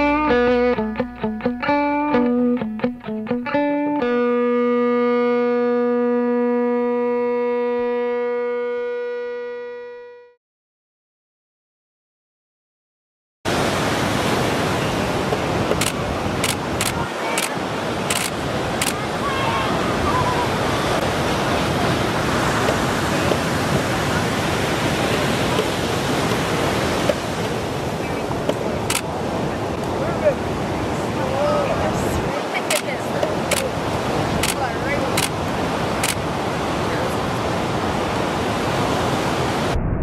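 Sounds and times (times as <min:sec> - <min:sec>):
ocean surf breaking: 0:13.5 - 0:40.0.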